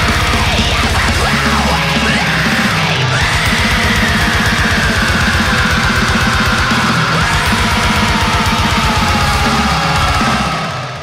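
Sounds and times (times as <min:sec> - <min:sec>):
heavy metal music: 0:00.0 - 0:11.0.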